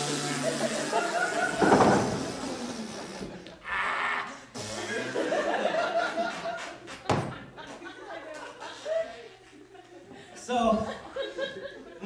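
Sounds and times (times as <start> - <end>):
audience chuckling: 0.0 - 12.0.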